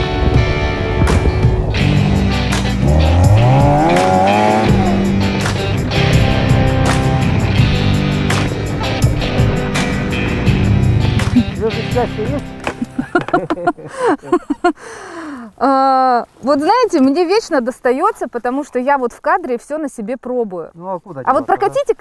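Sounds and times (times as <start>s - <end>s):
buggy engine revving: 0.0s - 12.8s
background music: 0.0s - 15.5s
tyres skidding: 0.1s - 14.7s.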